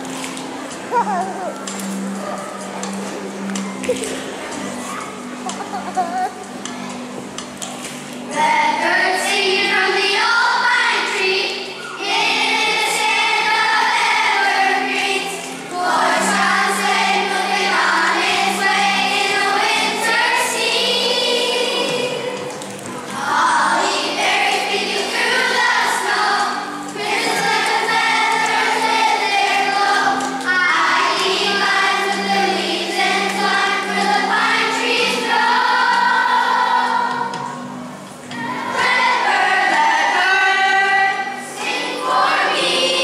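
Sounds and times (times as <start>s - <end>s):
children's choir singing: 0.0s - 43.0s.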